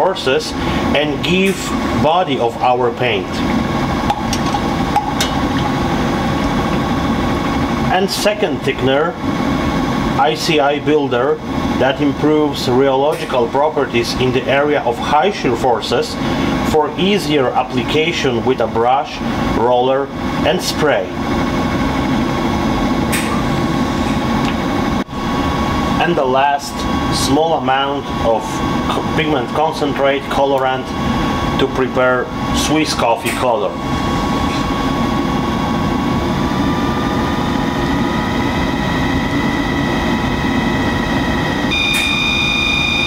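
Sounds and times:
stirrer motor humming: 0.0 - 8.4, 21.2 - 31.7
disperser motor humming: 21.2 - 32.9, 33.5 - 43.0.

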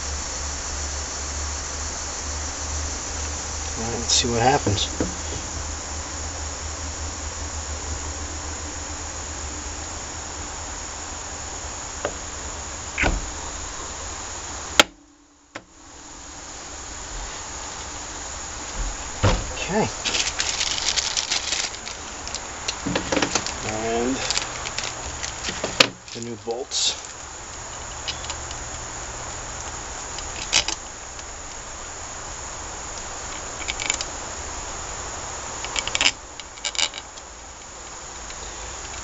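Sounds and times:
buzzing workshop hum: 0.0 - 36.6
plastic bags crinkling: 19.6 - 26.4.

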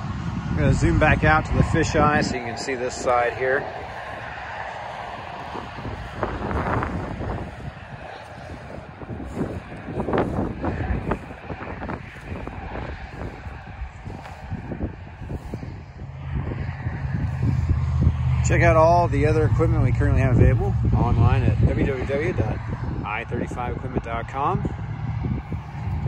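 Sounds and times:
wind buffeting microphone: 0.0 - 26.0
footsteps through dry grass: 3.2 - 18.2.

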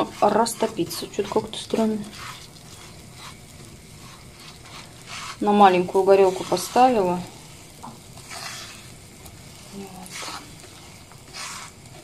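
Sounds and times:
butter sizzling in a frying pan: 0.0 - 12.0
spatula stirring in a pan: 0.0 - 12.0.

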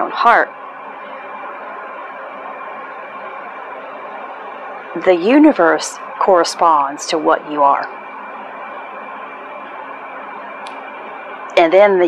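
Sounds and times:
steady drone with tones: 0.0 - 12.0.

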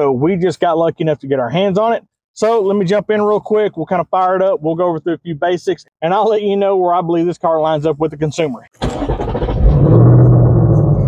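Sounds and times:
car engine starting up: 8.8 - 11.0.

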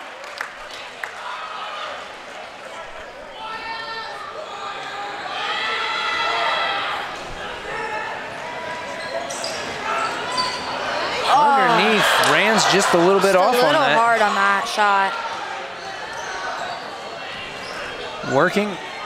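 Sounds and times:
crowd voices and calls: 0.0 - 19.0.

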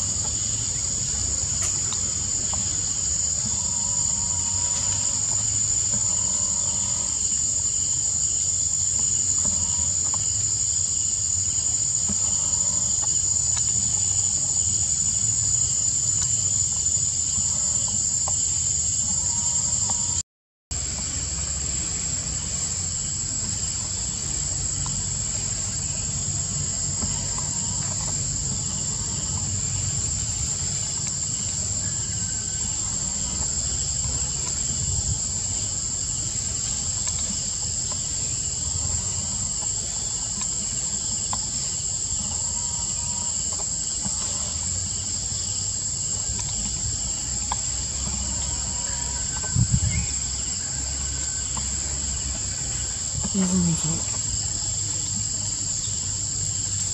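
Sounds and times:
forest insects droning: 0.0 - 56.9.

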